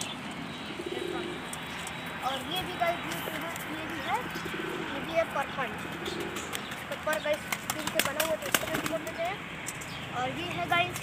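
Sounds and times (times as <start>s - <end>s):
pigeon cooing: 0.7s - 1.6s, 3.3s - 6.6s.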